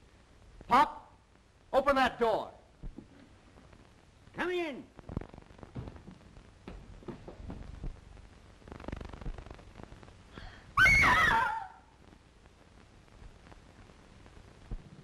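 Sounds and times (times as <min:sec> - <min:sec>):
woman screaming: 0:10.8 - 0:11.9.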